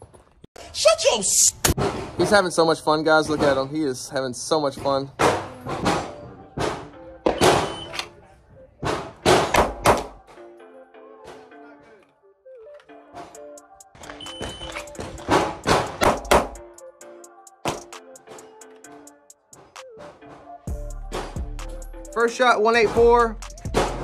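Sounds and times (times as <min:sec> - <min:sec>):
background music: 0:01.0 - 0:24.0
shot timer beep: 0:14.2 - 0:14.8.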